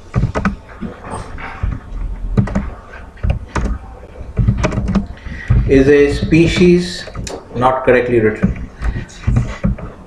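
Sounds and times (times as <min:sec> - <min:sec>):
typing on computer keyboard: 0:00.1 - 0:00.9, 0:01.6 - 0:01.8, 0:02.4 - 0:10.0.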